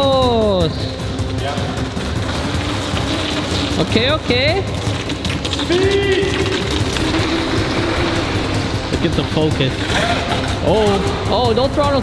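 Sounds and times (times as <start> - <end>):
model boat motor whining: 6.6 - 10.7.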